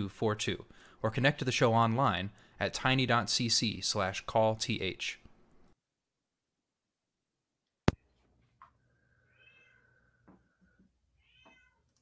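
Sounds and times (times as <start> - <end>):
faint cat meows: 9.3 - 10.0, 11.1 - 12.0.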